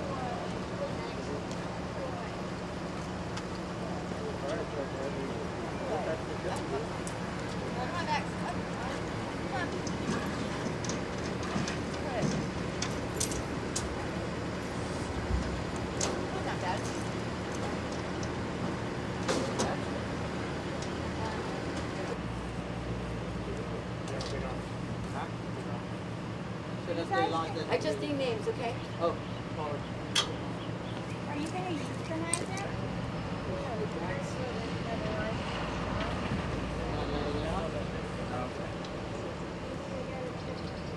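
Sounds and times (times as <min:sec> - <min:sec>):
faint voices: 0:00.0 - 0:18.1, 0:19.3 - 0:40.9
vehicle idling hum: 0:00.0 - 0:40.9.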